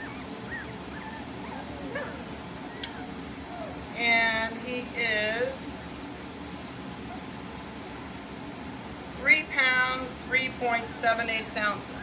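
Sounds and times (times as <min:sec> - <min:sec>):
puppies whimpering: 0:00.0 - 0:03.9
sharp click: 0:02.8 - 0:03.0.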